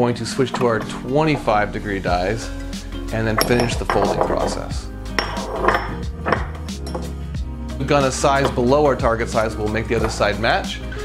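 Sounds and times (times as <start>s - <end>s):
background music: 0.0s - 11.0s
metal clinks and knocks: 3.4s - 4.6s, 5.2s - 7.2s.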